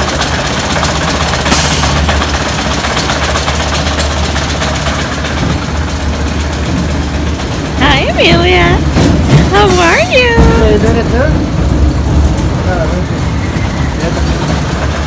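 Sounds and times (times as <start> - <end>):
roller coaster train rattling: 0.0 - 15.0.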